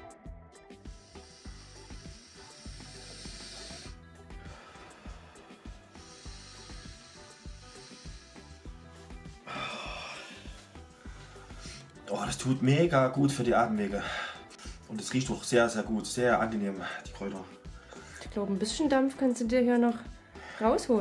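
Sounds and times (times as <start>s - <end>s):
background music: 0.0s - 21.0s
person inhaling with hissing breaths: 0.8s - 12.1s, 14.0s - 14.9s, 16.8s - 18.3s, 20.1s - 20.7s.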